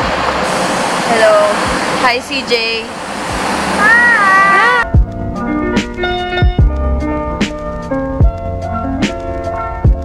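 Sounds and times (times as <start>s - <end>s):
crowd and traffic hiss: 0.0s - 4.8s
child's drawn-out call: 3.8s - 4.9s
background music with drums: 4.8s - 10.0s.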